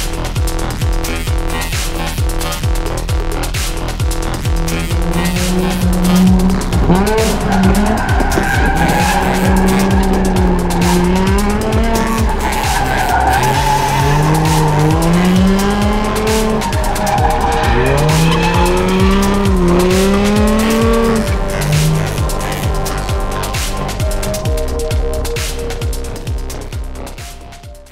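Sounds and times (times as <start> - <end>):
car engine revving: 0.0 - 27.6
electronic music with beat: 0.0 - 27.9
tyres squealing on asphalt: 2.2 - 25.8.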